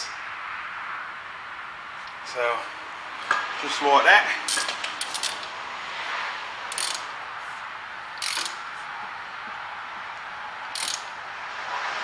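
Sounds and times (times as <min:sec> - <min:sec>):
ratchet wrench clicking: 0:04.5 - 0:05.5, 0:06.7 - 0:07.2, 0:08.2 - 0:08.6, 0:10.7 - 0:11.2.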